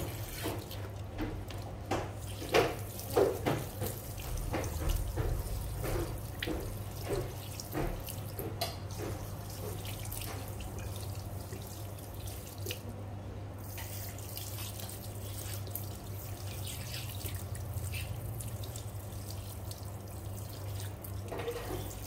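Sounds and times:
water splashes and drips: 0.0s - 13.0s, 13.6s - 22.0s
water spraying into washbasin: 0.0s - 13.0s, 13.6s - 22.0s.

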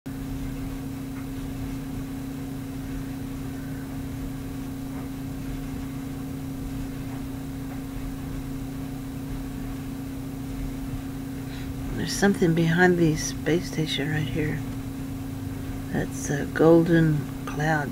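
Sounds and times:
steady low hum: 0.1s - 17.9s.

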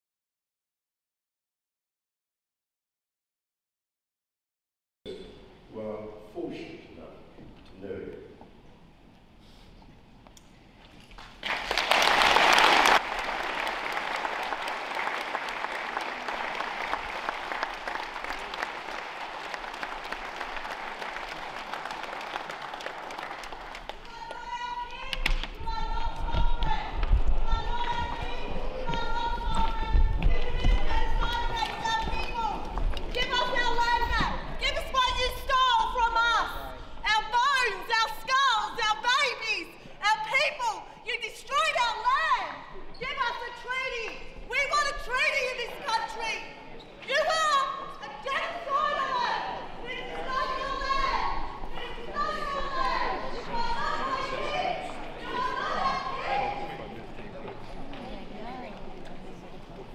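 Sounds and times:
woman shouting in a large hall: 23.9s - 56.7s.

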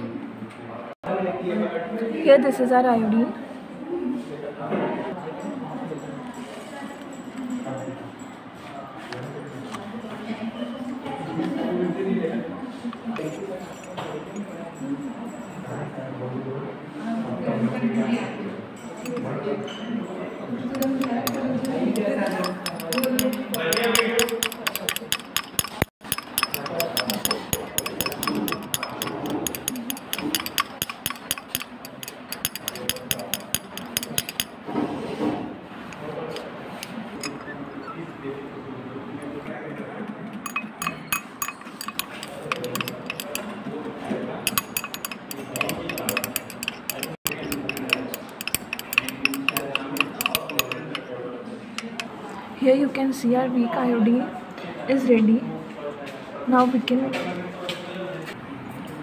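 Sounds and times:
glass stirring rod clinking on beaker: 20.7s - 34.6s, 40.4s - 43.5s, 44.5s - 51.1s, 51.8s - 52.1s.

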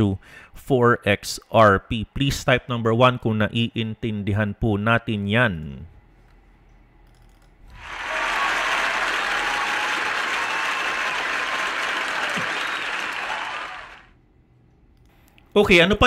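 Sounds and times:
crowd applause: 7.8s - 14.1s.

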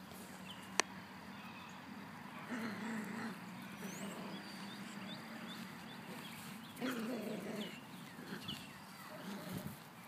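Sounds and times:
puppy growling: 2.4s - 9.8s.

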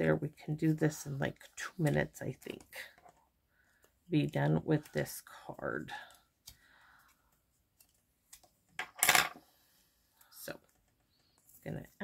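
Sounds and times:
soft paper rustle: 6.0s - 8.7s.

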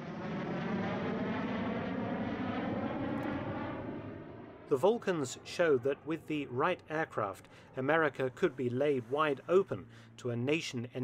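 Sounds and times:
jet bomber flying past: 0.0s - 10.2s.

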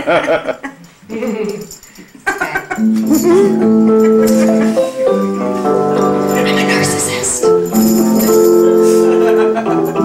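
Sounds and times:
person chattering: 6.0s - 7.6s
person whimpering: 6.2s - 7.5s.

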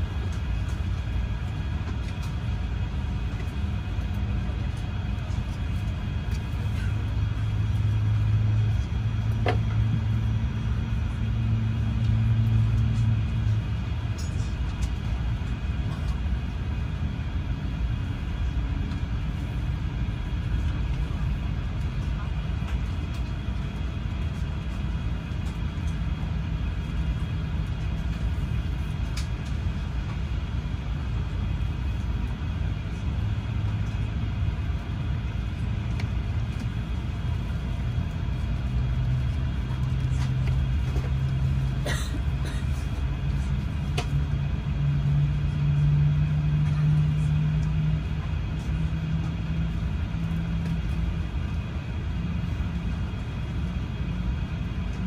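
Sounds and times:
ventilation hum in aircraft cabin: 0.0s - 55.0s.

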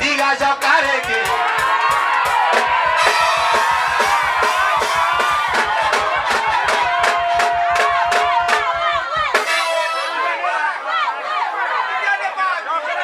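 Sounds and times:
fast drum beat: 0.0s - 10.1s.

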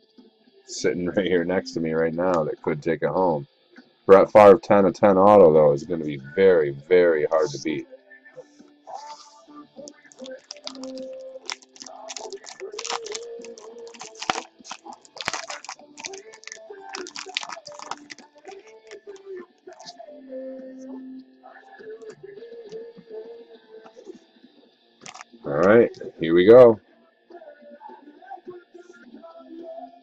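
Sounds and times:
foil pack crinkling and tearing: 10.2s - 19.9s, 25.0s - 25.3s.

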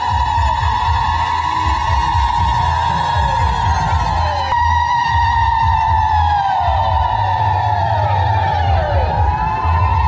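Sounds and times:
low pounding beat: 0.0s - 10.0s.

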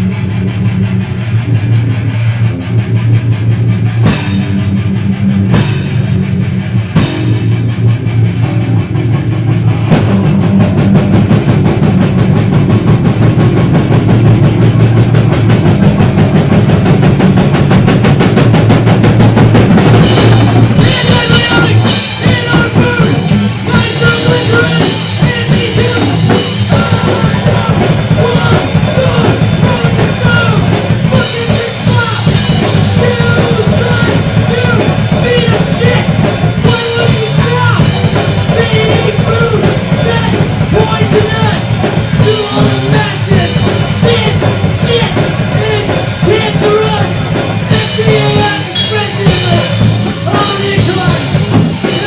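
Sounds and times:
drum kit: 0.0s - 52.0s
punk rock band playing live: 0.0s - 52.0s.

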